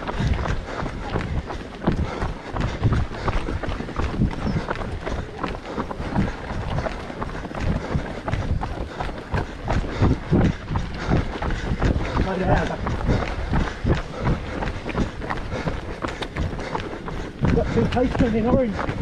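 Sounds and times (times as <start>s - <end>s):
runners' footsteps on pavement: 0.0s - 19.0s.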